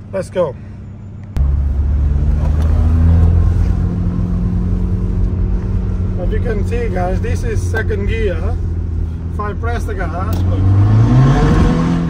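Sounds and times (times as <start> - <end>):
higher engine tone: 0.0 - 12.0
diesel engine accelerating hard: 1.3 - 12.0.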